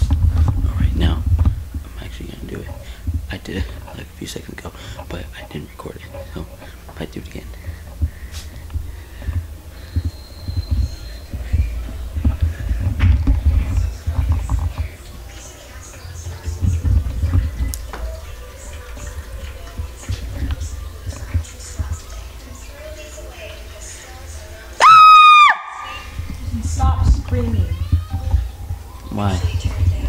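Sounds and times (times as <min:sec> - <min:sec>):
person screaming shrilly: 0:24.8 - 0:26.0.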